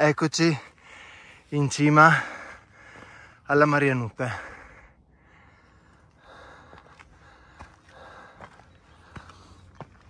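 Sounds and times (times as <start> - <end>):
heavy breathing: 0.5 - 10.0.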